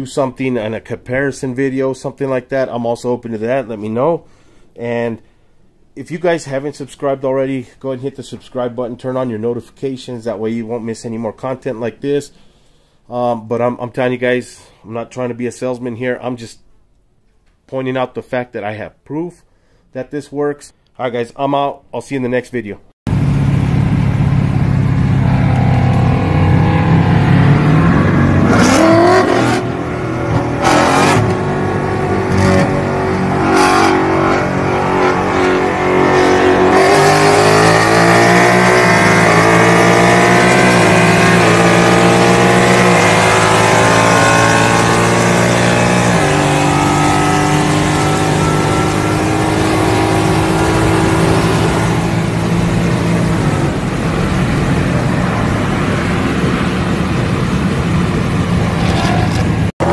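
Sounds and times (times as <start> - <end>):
car engine accelerating: 23.1 - 59.9.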